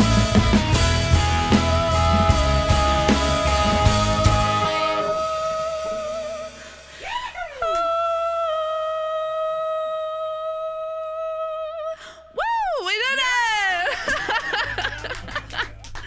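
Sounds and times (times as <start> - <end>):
rock band playing: 0.0 - 7.0.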